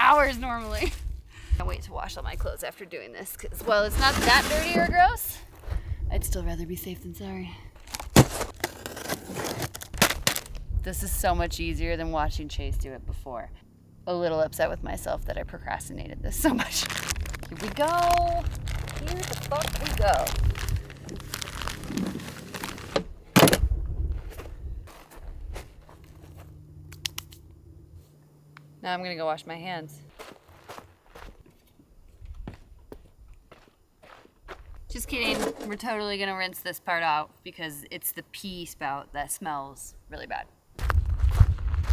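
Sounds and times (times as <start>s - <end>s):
wind rumble on microphone: 0.2s - 2.6s, 3.3s - 7.2s, 10.5s - 13.6s, 14.6s - 22.2s, 23.5s - 26.0s, 40.8s - 41.9s
cardboard and bag rustling: 7.8s - 10.6s, 16.5s - 23.6s
loud plastic clunk: 22.9s - 23.7s
sharp clicks and snaps: 26.9s - 27.5s.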